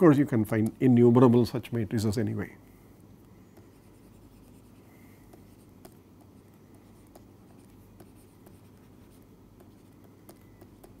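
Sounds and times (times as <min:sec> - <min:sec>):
low steady hum: 0:00.0 - 0:11.0
stylus tapping on tablet screen: 0:05.2 - 0:11.0.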